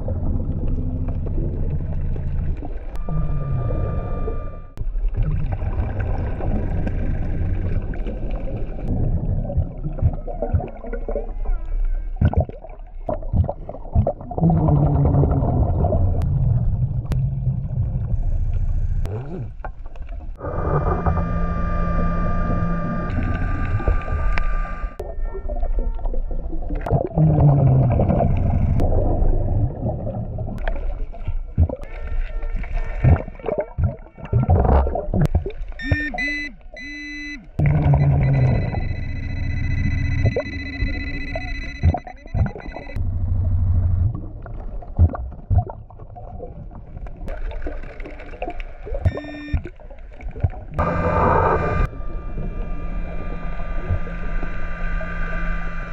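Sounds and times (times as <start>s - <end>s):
exhaled bubbles rumbling: 0.0s - 36.9s, 37.6s - 55.9s.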